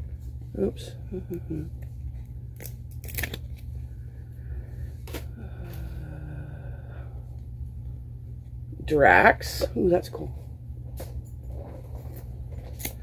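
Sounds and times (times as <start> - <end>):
steady low hum: 0.0 - 13.0
cards slapping and rustling: 2.1 - 3.8, 11.6 - 13.0.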